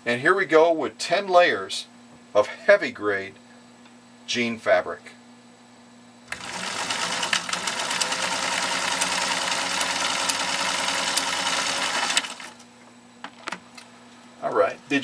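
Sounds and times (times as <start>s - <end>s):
sewing machine stitching: 6.3s - 12.6s.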